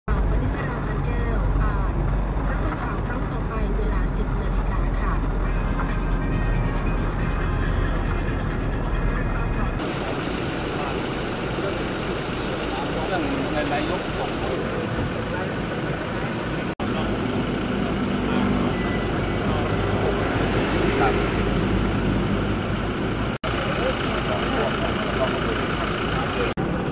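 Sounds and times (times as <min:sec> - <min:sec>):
people talking in car: 0:00.1 - 0:21.8, 0:23.4 - 0:26.9
car road and engine rumble: 0:00.1 - 0:26.9
outdoor people talking: 0:00.1 - 0:26.9.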